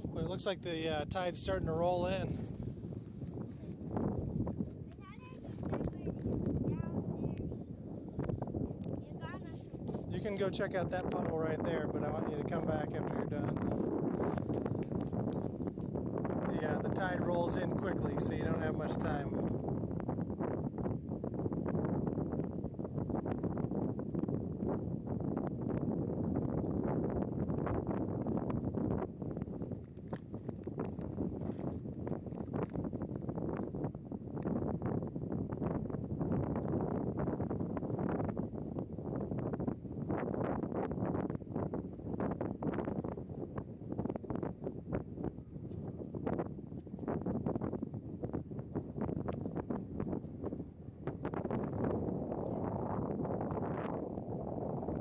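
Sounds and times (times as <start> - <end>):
wind buffeting microphone: 0.0 - 55.0
short crackles: 2.1 - 7.5.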